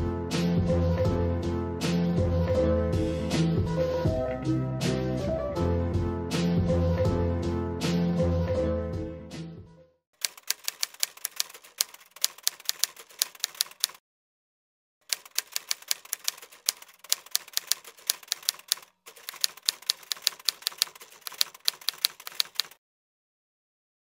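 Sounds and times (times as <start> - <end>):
typewriter key clacks: 10.2 - 14.0, 15.0 - 22.8.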